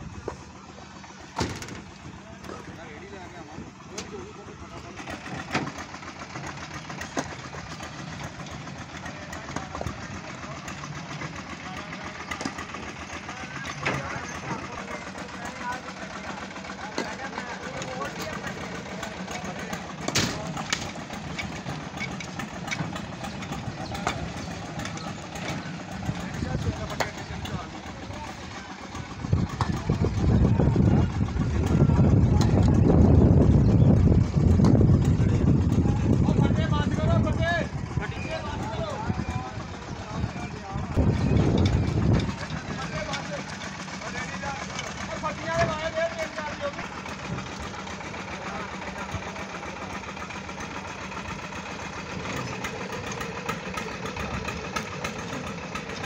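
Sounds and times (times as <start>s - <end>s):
concrete mixer engine running: 0.0s - 56.0s
knocks and clatter: 20.0s - 27.6s
loud low rumble: 25.9s - 43.1s.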